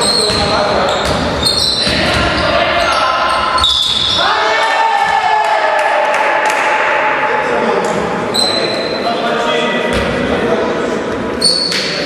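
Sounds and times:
sneaker squeaks: 0:00.0 - 0:04.3, 0:08.3 - 0:09.2, 0:11.3 - 0:12.0
basketball bouncing: 0:00.2 - 0:02.4
players shouting: 0:01.5 - 0:07.6
thin high squeak: 0:08.3 - 0:09.1.

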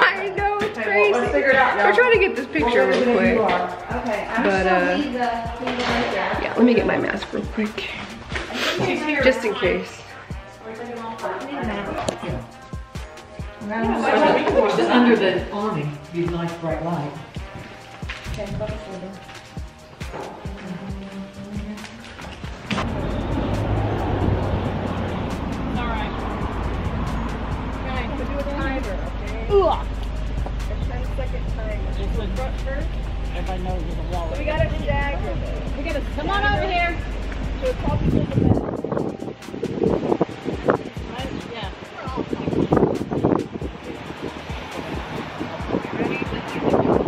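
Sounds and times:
women's voices: 0:00.0 - 0:12.3, 0:13.6 - 0:16.4, 0:20.4 - 0:22.2, 0:34.4 - 0:38.7, 0:45.7 - 0:47.0
background music with steady beat: 0:00.0 - 0:47.0
women laughing: 0:13.9 - 0:15.3
wind buffeting microphone: 0:17.4 - 0:19.0, 0:34.0 - 0:47.0.

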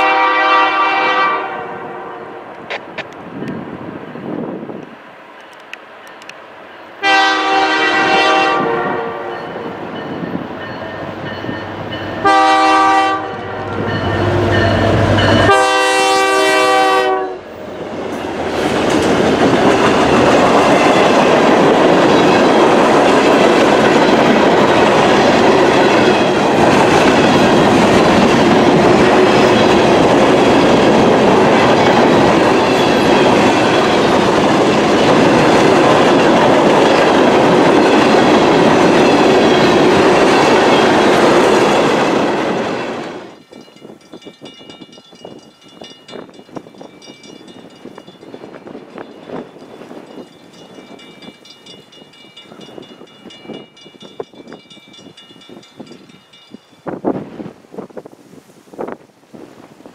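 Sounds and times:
locomotive horn blasts: 0:00.0 - 0:02.4, 0:07.0 - 0:09.6, 0:12.2 - 0:14.2, 0:15.4 - 0:17.5
freight cars rolling on rails: 0:17.5 - 0:58.1.

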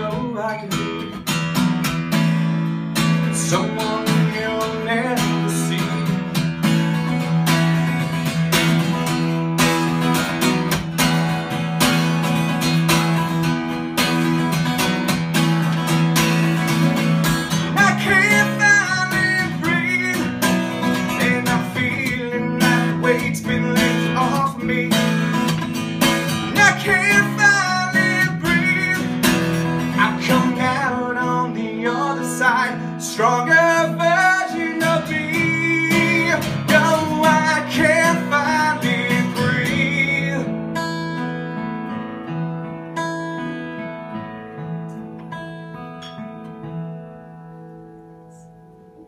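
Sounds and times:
man singing: 0:00.0 - 0:01.4, 0:03.0 - 0:07.1, 0:17.4 - 0:40.9
strummed acoustic guitar: 0:00.0 - 0:49.0.

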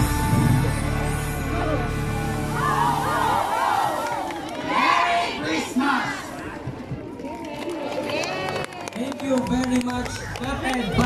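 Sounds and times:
music: 0:00.0 - 0:03.4
crowd shouting and cheering: 0:00.0 - 0:11.0.

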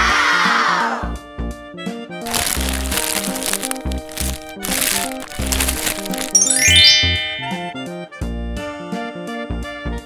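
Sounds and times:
plastic blister pack crinkling: 0:02.2 - 0:06.7.

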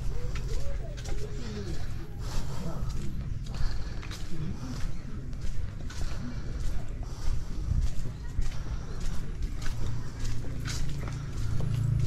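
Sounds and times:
faint voices: 0:00.0 - 0:12.0
walking rumble: 0:00.0 - 0:12.0.

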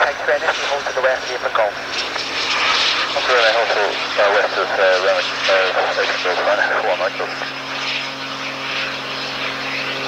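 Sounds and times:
jet engines taxiing hiss: 0:00.0 - 0:10.0.

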